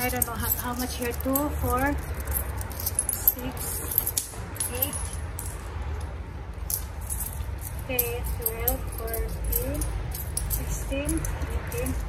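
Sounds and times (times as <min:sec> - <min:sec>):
coins clinking: 0:00.0 - 0:12.0.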